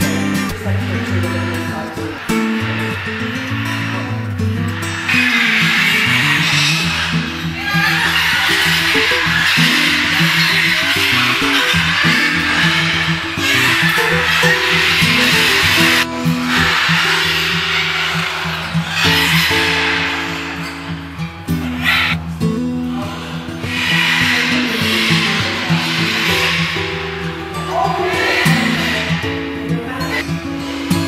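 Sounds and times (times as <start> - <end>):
macaws squawking: 0.0 - 31.0.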